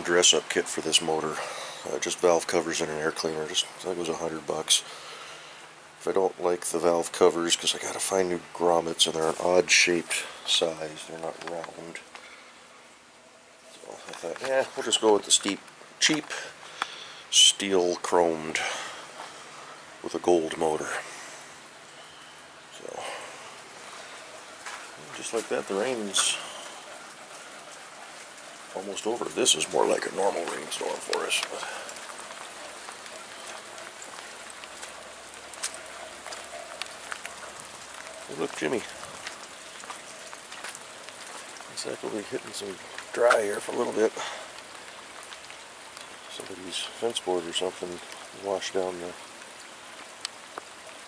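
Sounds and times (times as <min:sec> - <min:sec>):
rain drop ticks: 0:00.0 - 0:12.6, 0:13.7 - 0:51.0
background hiss: 0:00.0 - 0:51.0.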